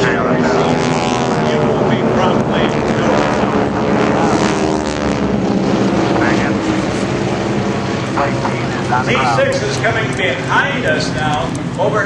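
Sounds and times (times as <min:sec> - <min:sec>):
propeller aircraft engines droning: 0:00.0 - 0:12.0.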